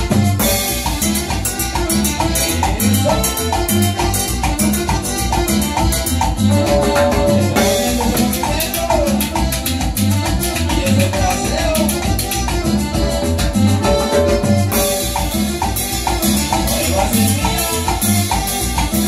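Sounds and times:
electronic keyboard melody: 0.0 - 19.0.

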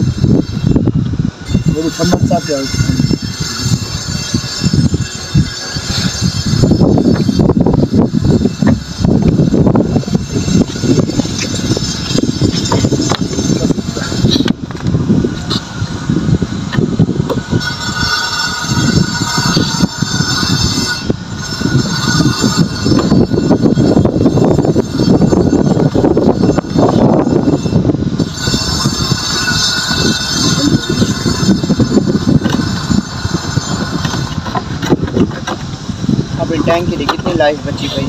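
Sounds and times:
wind rumbling on microphone: 0.0 - 38.0
high squealing tone: 15.4 - 38.0.

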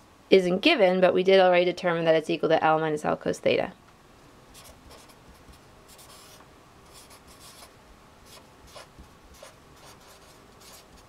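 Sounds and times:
marker scratching on paper: 4.6 - 7.7, 8.3 - 11.0.

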